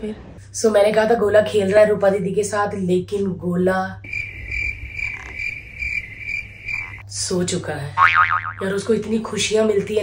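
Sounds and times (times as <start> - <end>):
cricket chirping: 4.0 - 7.0.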